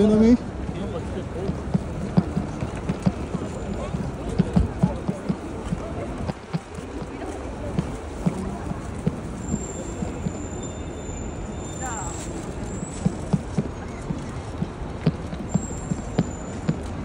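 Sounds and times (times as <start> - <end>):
murmur of street crowd: 0.0 - 17.0
footsteps on stone paving: 0.4 - 10.6, 11.8 - 17.0.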